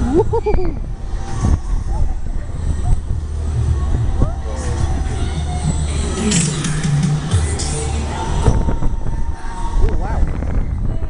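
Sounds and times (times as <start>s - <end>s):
fairground ride rumbling: 0.0s - 11.0s.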